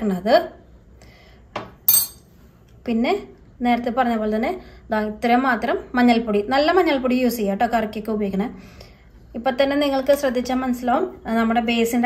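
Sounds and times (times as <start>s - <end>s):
spoon clinking glass: 1.9s - 2.3s.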